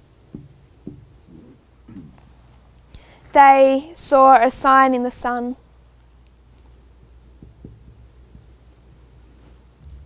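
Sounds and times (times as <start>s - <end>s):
marker pen writing on whiteboard: 0.0s - 2.2s, 7.0s - 9.1s
low room hum: 0.0s - 10.0s
soft taps: 7.4s - 8.6s.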